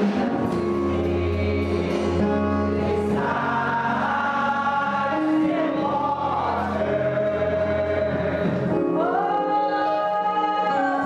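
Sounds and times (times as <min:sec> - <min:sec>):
choir singing gospel song: 0:00.0 - 0:11.0.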